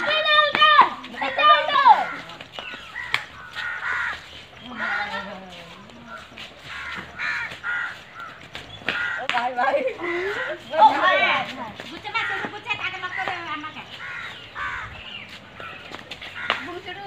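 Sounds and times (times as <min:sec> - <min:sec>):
boys shouting: 0:00.0 - 0:05.9, 0:08.9 - 0:13.4
boys chattering: 0:00.0 - 0:17.0.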